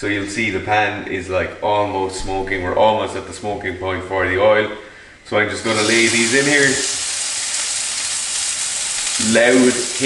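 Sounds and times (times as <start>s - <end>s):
steaks searing in frying pan: 5.6s - 10.0s.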